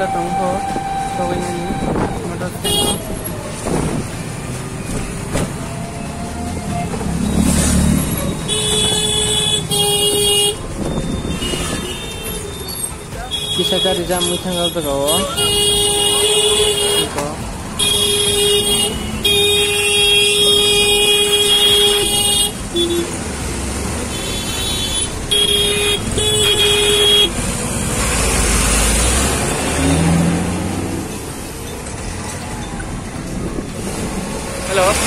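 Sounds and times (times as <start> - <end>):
vehicle horn honking: 0.0 - 3.1, 13.3 - 17.2, 24.1 - 27.4
street traffic: 0.0 - 35.0.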